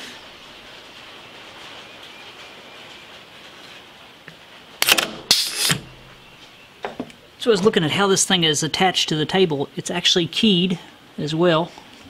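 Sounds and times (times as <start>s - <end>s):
compressed air blasts: 4.8s - 6.1s.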